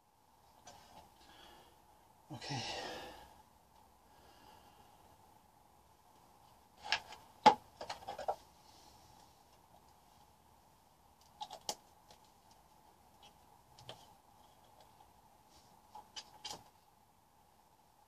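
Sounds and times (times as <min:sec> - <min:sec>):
man speaking: 0:02.3 - 0:03.2
man sighing: 0:02.3 - 0:03.3.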